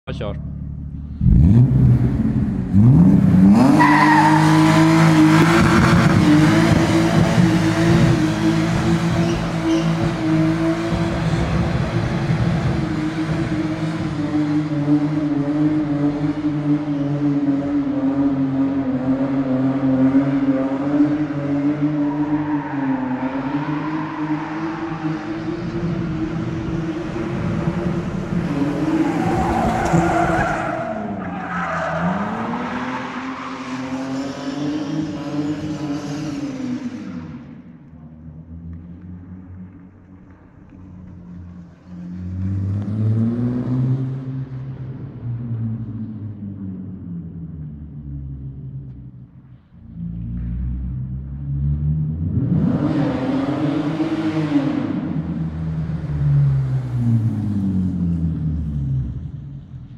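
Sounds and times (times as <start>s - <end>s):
car engine at high revs: 1.0s - 49.0s, 49.9s - 59.7s.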